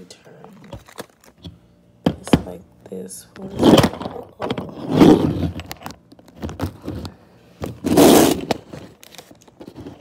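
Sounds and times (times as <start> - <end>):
phone handling scrapes and rustles: 3.5 - 10.0.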